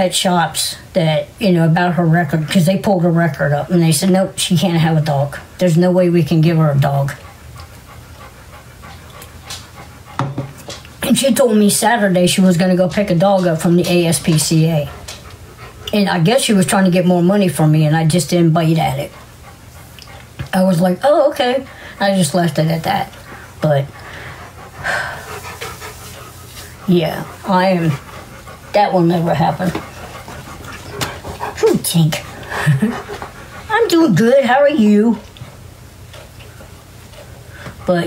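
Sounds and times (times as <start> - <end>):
dog panting: 0.0 - 38.0
breaths: 21.7 - 22.0, 23.2 - 26.0, 37.4 - 37.9.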